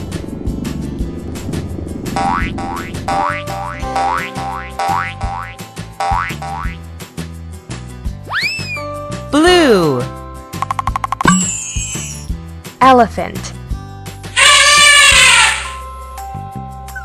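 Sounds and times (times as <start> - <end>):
background music: 0.0 - 17.0
cartoon boing effects: 2.2 - 6.8.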